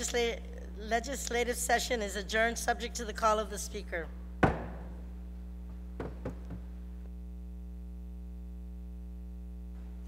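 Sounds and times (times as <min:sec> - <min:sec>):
gavel strike: 0:04.4 - 0:05.0, 0:06.0 - 0:06.6.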